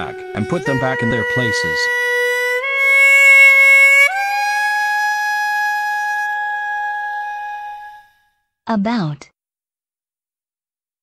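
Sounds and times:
double-reed oboe long note: 0:00.0 - 0:08.3.

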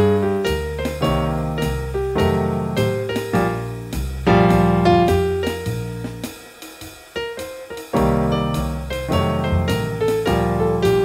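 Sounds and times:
jazz-blues electric piano: 0:00.0 - 0:06.4, 0:07.2 - 0:11.0.

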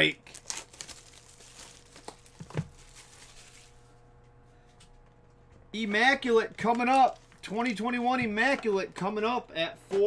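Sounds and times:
plastic wrap crinkling and tearing: 0:00.1 - 0:03.9.

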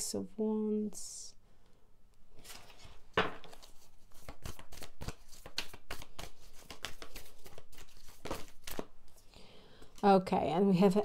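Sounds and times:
cards shuffling: 0:02.4 - 0:09.2.

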